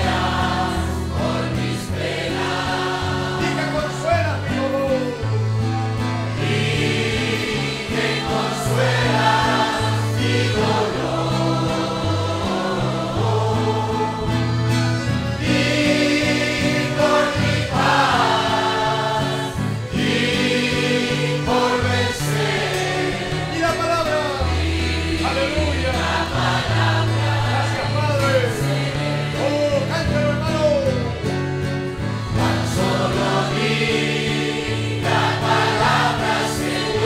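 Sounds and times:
congregation singing: 0.0 - 37.0
instrumental accompaniment: 0.0 - 37.0.

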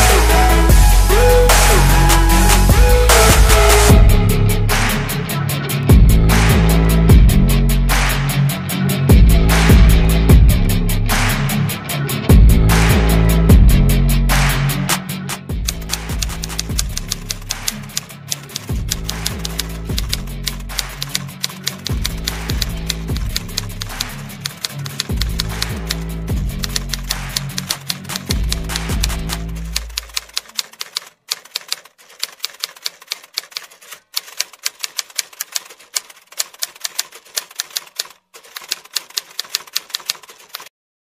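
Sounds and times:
background music with deep bass: 0.0 - 30.0
typewriter keystroke clicks: 15.6 - 26.0, 26.6 - 40.7.

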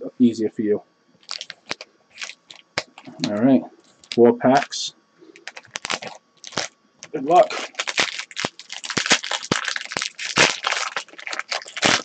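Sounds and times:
foil packs crinkling: 1.2 - 3.3, 3.9 - 4.8, 5.4 - 6.7, 7.3 - 12.0.

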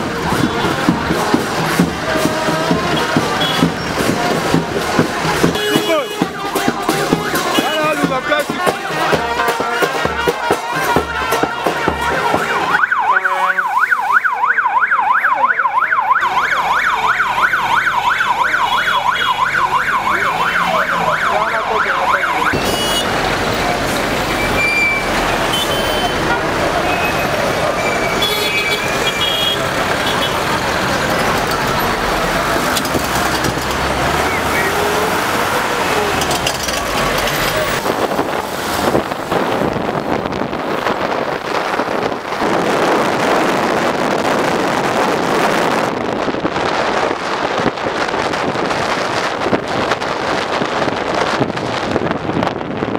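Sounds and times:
people's voices: 0.0 - 42.5
busy road traffic: 0.0 - 52.9
car horn toots: 2.1 - 13.6, 22.4 - 23.2, 24.4 - 30.6
electronic siren yelping: 12.7 - 22.6.

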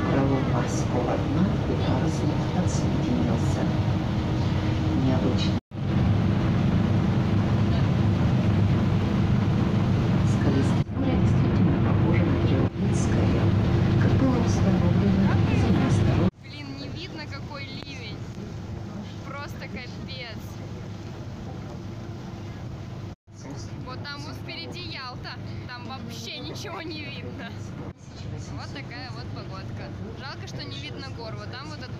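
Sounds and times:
ship engine low drone: 0.0 - 31.9.

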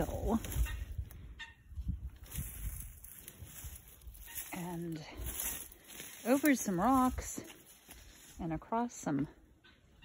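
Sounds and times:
footsteps through brush: 0.0 - 9.3
faint rustle of plants: 1.8 - 9.3.

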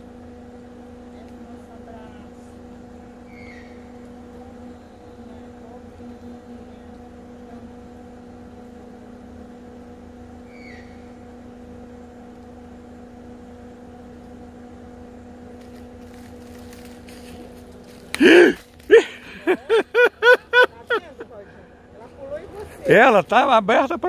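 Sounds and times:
low mechanical hum: 0.0 - 24.0.

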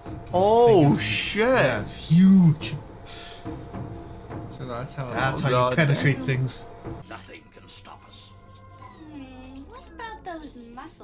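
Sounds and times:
steady low hum: 0.0 - 7.0
background music score: 0.0 - 10.4.

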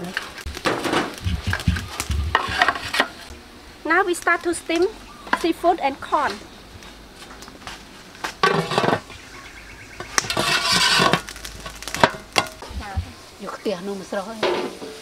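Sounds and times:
metal pot lid scraping: 0.9 - 3.3, 8.4 - 9.1, 10.1 - 12.6.

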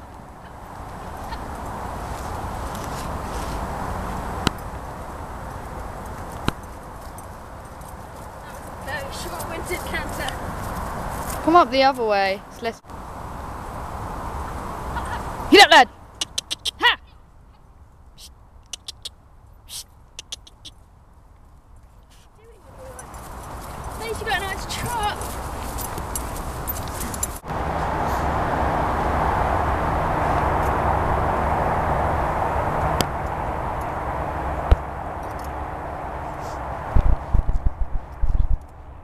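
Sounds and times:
horse hoofbeats on grass: 0.0 - 12.4, 21.4 - 27.5.

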